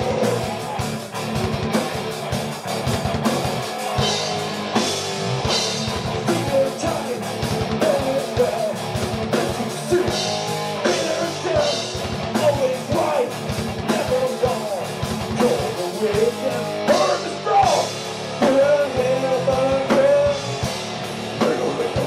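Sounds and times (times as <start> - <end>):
man singing: 0.0 - 0.8, 6.2 - 20.7, 21.4 - 22.0
drum kit pounding: 0.0 - 22.0
electric guitars: 0.0 - 22.0.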